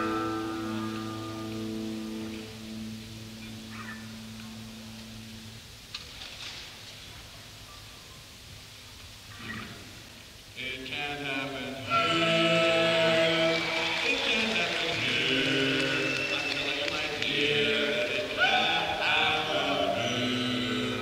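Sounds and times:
live band chord ringing out: 0:00.0 - 0:05.6
crowd noise in a hall: 0:00.0 - 0:21.0
tape hiss: 0:00.0 - 0:21.0
people shouting: 0:17.7 - 0:20.2.

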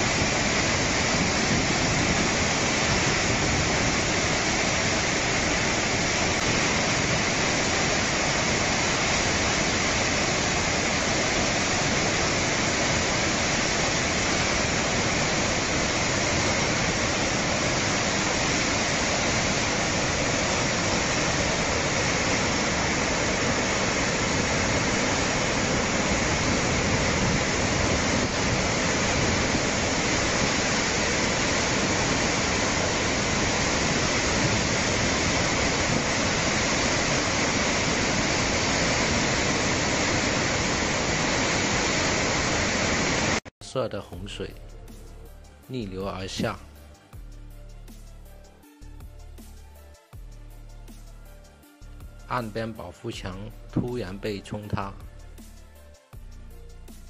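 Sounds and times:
floodwater rushing: 0:00.0 - 0:43.5.

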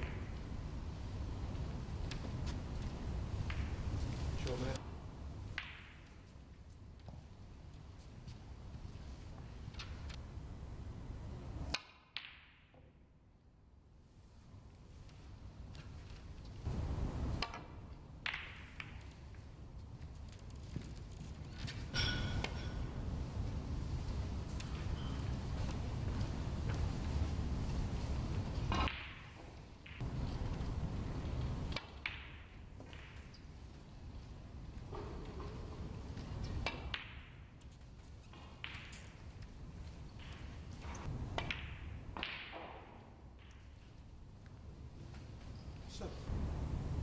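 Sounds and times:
snooker balls colliding: 0:00.0 - 0:04.8, 0:05.4 - 0:06.3, 0:11.7 - 0:13.0, 0:17.2 - 0:19.6, 0:27.9 - 0:44.0.

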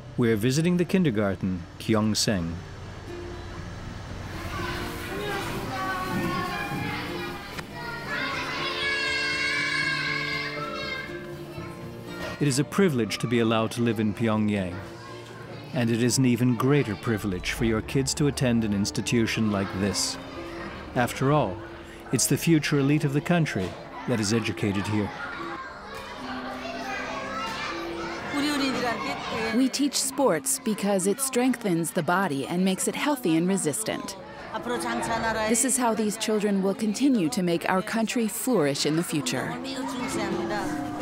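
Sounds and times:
music: 0:00.0 - 0:41.0
young children's voices: 0:04.3 - 0:18.4, 0:19.0 - 0:22.1, 0:22.9 - 0:41.0.

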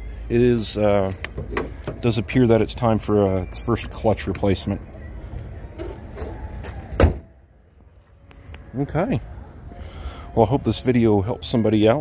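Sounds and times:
car hood slamming shut: 0:07.0 - 0:07.3.

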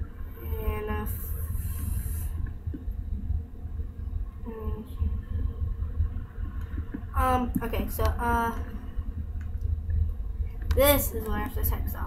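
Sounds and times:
low microphone rumble: 0:00.0 - 0:12.0.

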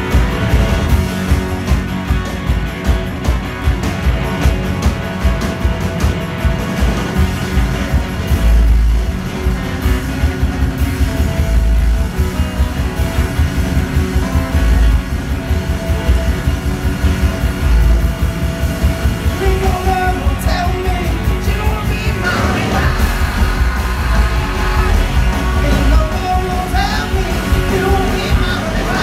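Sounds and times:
deep bass notes: 0:00.0 - 0:29.0
folk-rock band playing: 0:00.0 - 0:29.0
person singing: 0:19.3 - 0:29.0.

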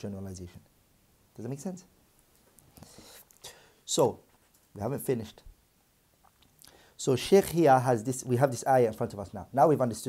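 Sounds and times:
man speaking: 0:00.0 - 0:00.7, 0:01.4 - 0:02.0, 0:03.9 - 0:05.5, 0:07.0 - 0:10.0
man breathing: 0:02.8 - 0:03.8, 0:06.6 - 0:07.0.

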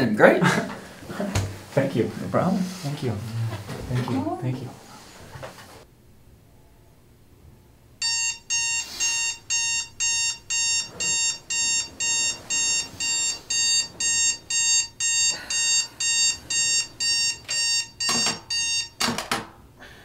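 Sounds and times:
alarm clock beeping: 0:08.0 - 0:19.1.

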